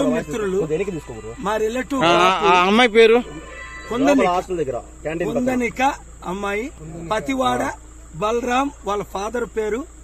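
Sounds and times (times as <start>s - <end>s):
man talking animatedly: 0.0s - 9.8s
insects chirring: 0.0s - 10.0s.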